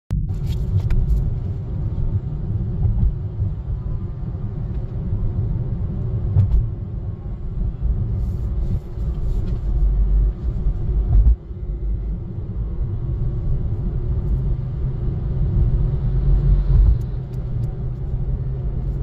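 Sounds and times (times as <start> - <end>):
road and engine rumble in car: 0.1 - 19.0.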